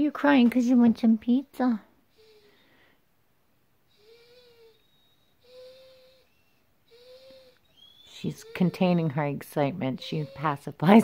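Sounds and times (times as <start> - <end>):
dog whining: 3.9 - 9.2.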